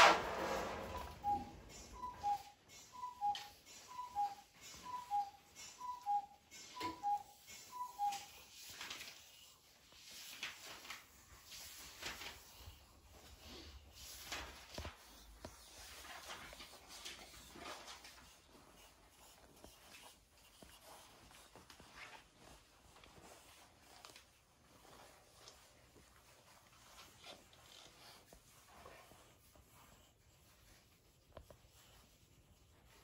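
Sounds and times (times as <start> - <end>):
pencil strokes on paper: 0.0 - 33.0
electronic two-tone beep: 1.0 - 7.2.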